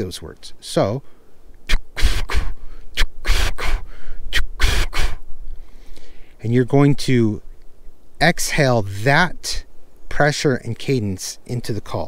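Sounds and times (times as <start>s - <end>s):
man blowing breath puffs: 1.1s - 6.4s.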